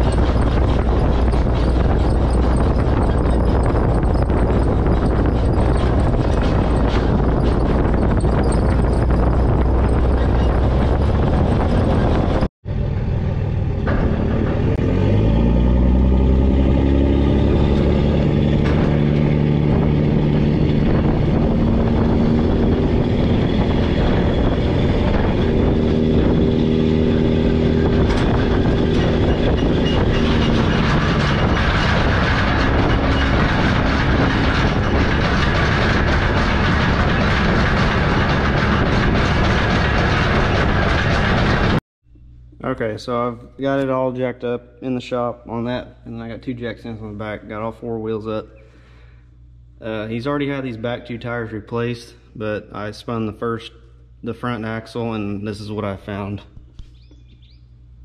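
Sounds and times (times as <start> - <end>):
droning tone: 0.0 - 42.8
tire and road noise: 0.0 - 43.0, 53.8 - 58.0.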